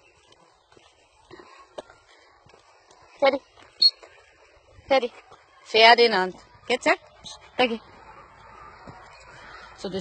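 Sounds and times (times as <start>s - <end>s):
footsteps on dirt path: 0.0s - 5.6s.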